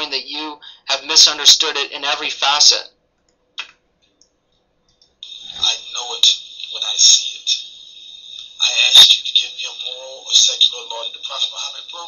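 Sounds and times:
high-pitched hiss: 0:05.2 - 0:12.0
man speaking: 0:05.2 - 0:12.0.

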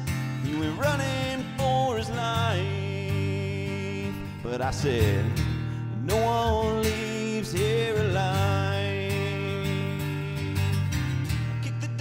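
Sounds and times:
strummed acoustic guitar: 0:00.0 - 0:12.0
man singing long held notes: 0:00.5 - 0:10.8.

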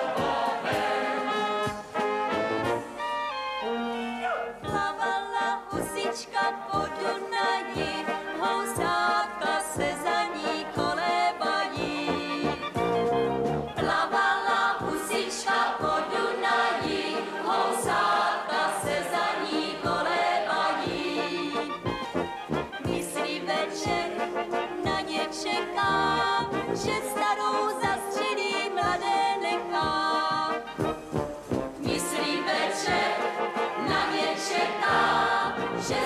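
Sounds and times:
group of voices singing: 0:00.0 - 0:02.4, 0:03.6 - 0:31.0, 0:31.8 - 0:36.0
brass band playing: 0:00.0 - 0:36.0.

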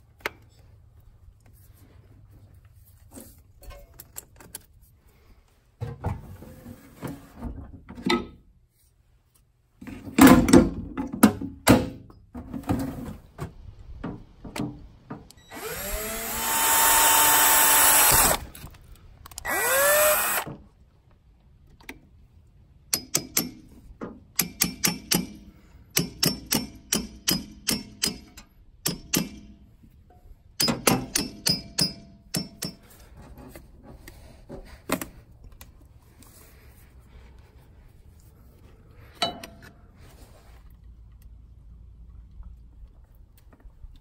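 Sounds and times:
power drill boring through steel: 0:15.5 - 0:18.5, 0:19.5 - 0:20.5.

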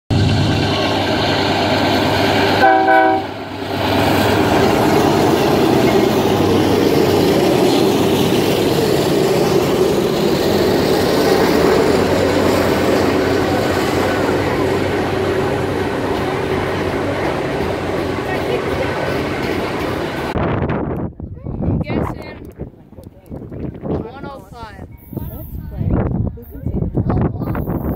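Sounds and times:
freight cars rumbling on rails: 0:00.1 - 0:27.9
train air horn chord: 0:02.6 - 0:03.4.

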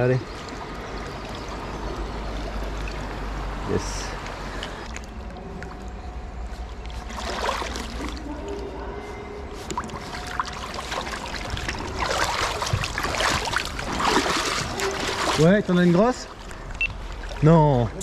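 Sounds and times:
river water running and splashing: 0:00.0 - 0:08.6, 0:09.5 - 0:18.0.

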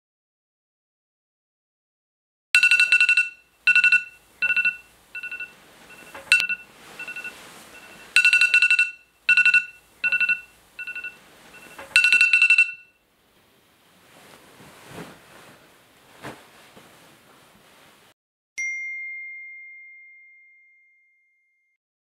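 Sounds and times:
phone alarm pulsed beeping: 0:02.6 - 0:13.0.

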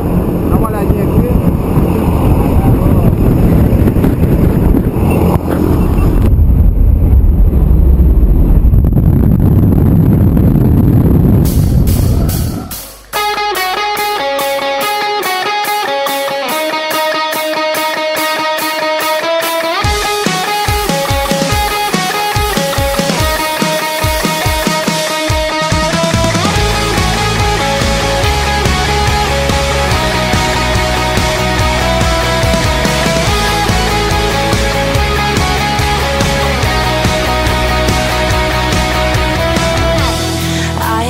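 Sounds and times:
wind noise: 0:00.0 - 0:13.3
plane engine noise: 0:00.0 - 0:13.4
drums: 0:10.4 - 0:41.0
guitar music: 0:11.5 - 0:41.0.

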